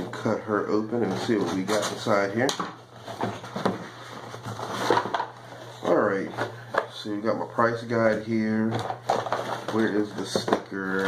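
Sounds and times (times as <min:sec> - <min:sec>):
cardboard box crackling and scraping: 0:02.9 - 0:06.0.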